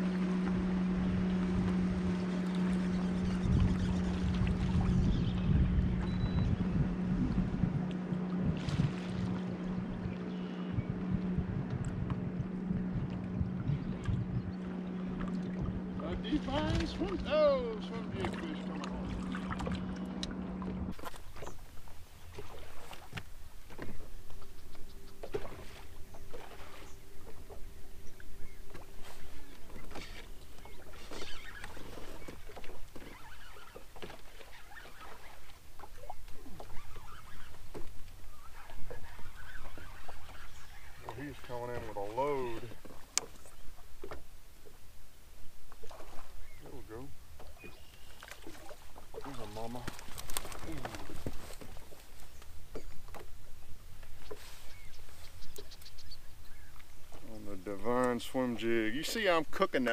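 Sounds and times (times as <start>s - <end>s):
electric trolling motor humming: 0.0s - 44.8s
water slapping against hull: 0.0s - 44.8s, 45.6s - 59.9s.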